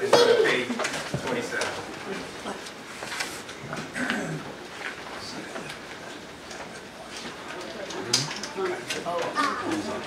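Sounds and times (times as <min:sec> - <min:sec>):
paper rustles: 0:02.9 - 0:03.6.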